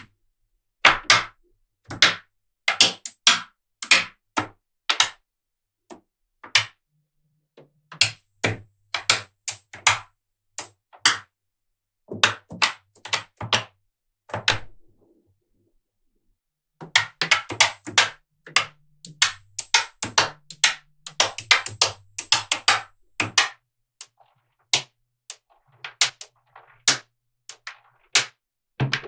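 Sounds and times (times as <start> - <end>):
magnetic balls clicking: 0.0 - 6.8, 7.9 - 29.0.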